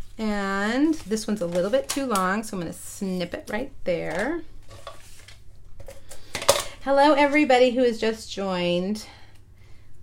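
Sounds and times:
hands and paper rustling on table: 0.0 - 6.5.

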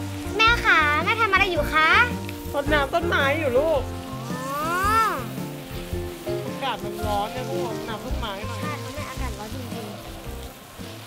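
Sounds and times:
background music: 0.0 - 11.0
garden hose spraying water: 0.0 - 11.0.

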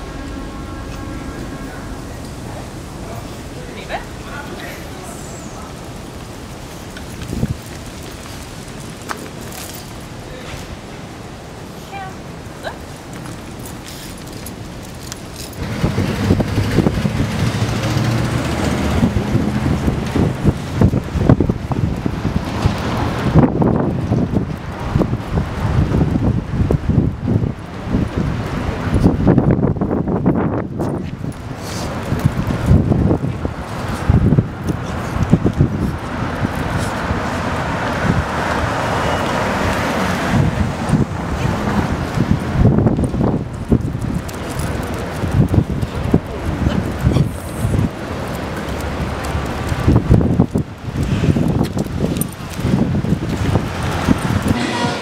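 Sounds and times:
street traffic passing: 0.0 - 55.0
vehicle engine rumbling: 0.0 - 55.0
wind buffeting microphone: 0.0 - 55.0.

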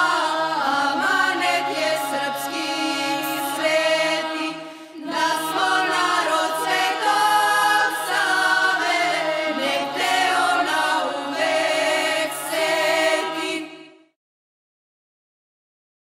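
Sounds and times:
choir singing in harmony: 0.0 - 14.2.

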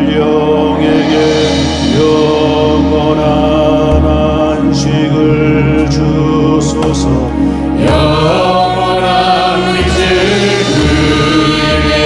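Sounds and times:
traditional and keyboard ensemble: 0.0 - 12.0.

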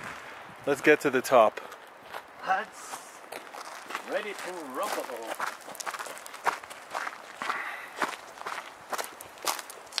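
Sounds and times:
footsteps on gravel: 0.8 - 10.0.

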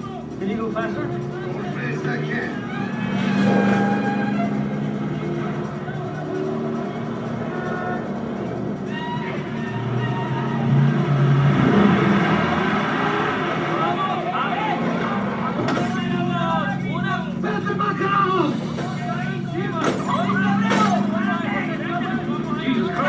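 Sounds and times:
car engine running hard: 0.0 - 23.0
film music score: 0.0 - 23.0.

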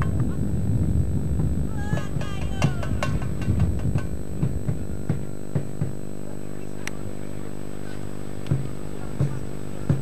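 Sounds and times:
soft low thumps: 0.0 - 6.2
electrical mains hum: 0.0 - 10.0.

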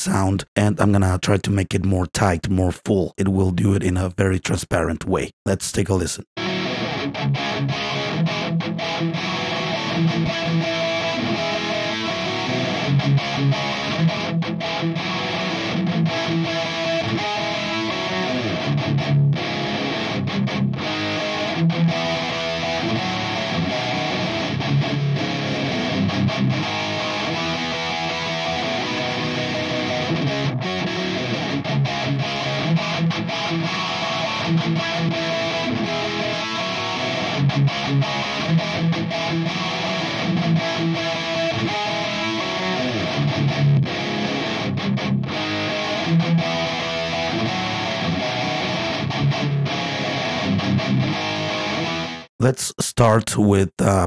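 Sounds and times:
distorted electric guitar in song: 6.4 - 53.4.

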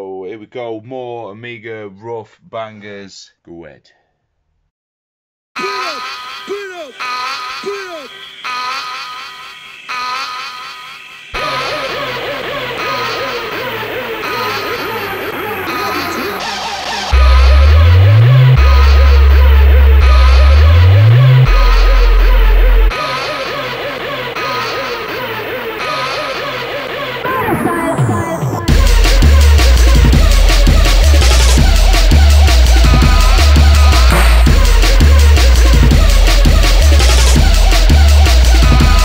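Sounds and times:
sample-based jungle track: 5.6 - 39.0
heavy sub-bass pitch slides: 11.4 - 23.0, 27.3 - 39.0.

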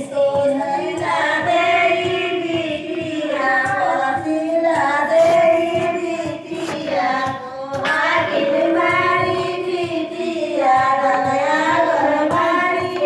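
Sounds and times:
women singing together: 0.0 - 13.0.

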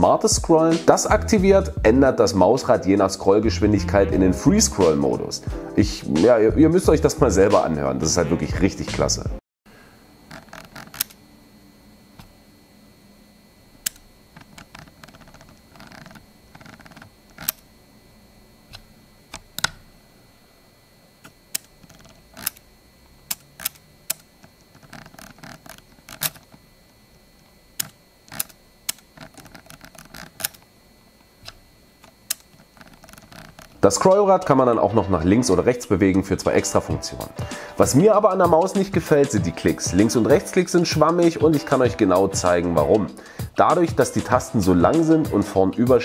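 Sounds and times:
scroll wheel rolling ticks: 13.8 - 17.6, 23.3 - 26.6, 27.8 - 30.7, 31.4 - 34.6.

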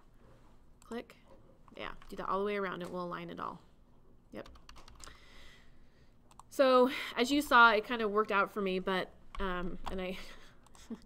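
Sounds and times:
computer keyboard keystrokes: 4.4 - 5.2, 6.3 - 6.5.

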